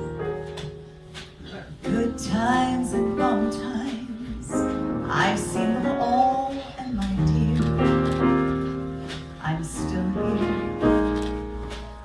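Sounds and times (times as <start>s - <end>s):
piano: 0.0s - 12.0s
woman singing: 1.8s - 8.4s, 9.4s - 11.2s.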